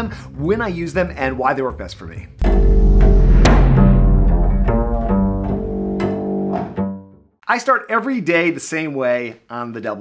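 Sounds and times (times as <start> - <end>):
double bass sustained notes: 2.4 - 6.6.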